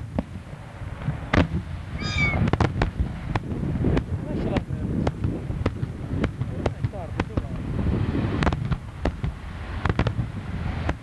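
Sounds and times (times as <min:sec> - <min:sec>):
firework shells bursting: 0:01.1 - 0:03.5
short high-pitched cry: 0:02.0 - 0:02.5.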